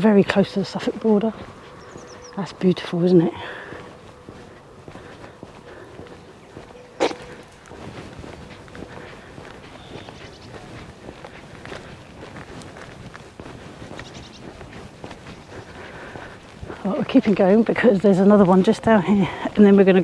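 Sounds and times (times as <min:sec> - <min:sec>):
footsteps on tarmac: 0:00.0 - 0:20.0.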